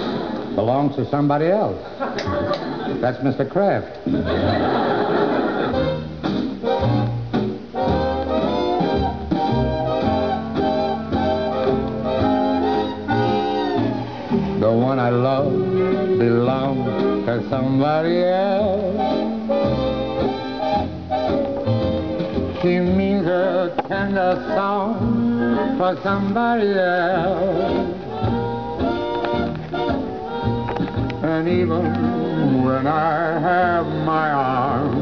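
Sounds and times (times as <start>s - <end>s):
instrumental band from vinyl record: 0.0s - 35.0s.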